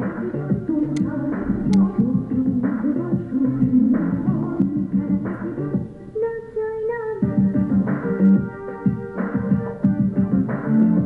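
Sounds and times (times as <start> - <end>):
song playing through a television: 0.0 - 11.0
plucked strings and beat: 0.9 - 5.9.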